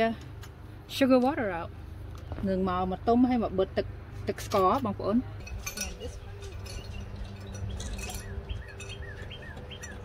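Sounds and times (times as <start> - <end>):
songbird chirping: 5.8 - 10.0.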